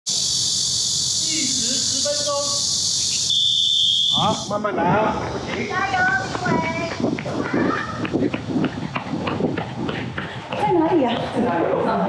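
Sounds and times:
cicadas chorus: 0.1 - 12.0.

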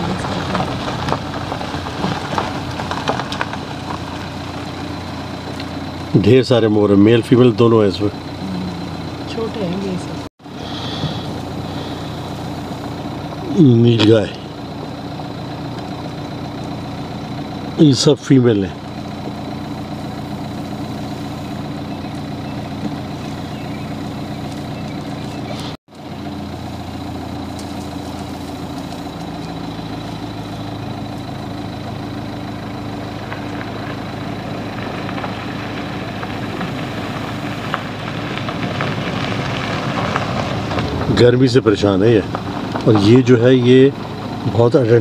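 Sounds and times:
vehicle engine idling: 0.0 - 45.0.

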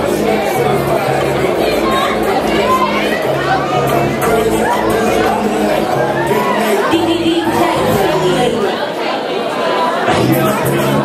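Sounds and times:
music: 0.0 - 8.7, 10.1 - 11.0
audience chattering and calling out: 0.0 - 11.0.

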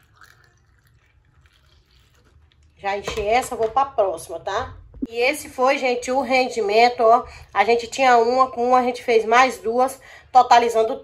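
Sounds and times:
liquid pouring into a funnel: 0.0 - 2.8.

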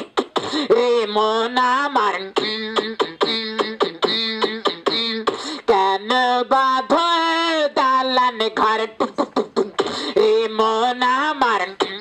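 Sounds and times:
held pitched vocal tone: 0.0 - 12.0
man making mouth music: 0.0 - 12.0.

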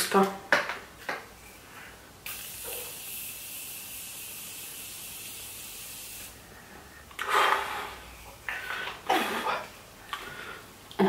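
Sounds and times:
spray misting hiss: 2.2 - 6.4.

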